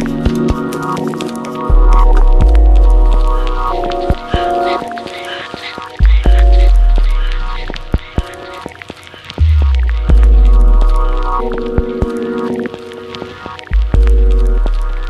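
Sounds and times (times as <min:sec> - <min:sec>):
sustained synth chords: 0:00.0 - 0:08.4, 0:09.4 - 0:12.7
deep bass notes: 0:01.7 - 0:04.5, 0:06.0 - 0:08.0, 0:09.4 - 0:11.9, 0:13.7 - 0:15.0.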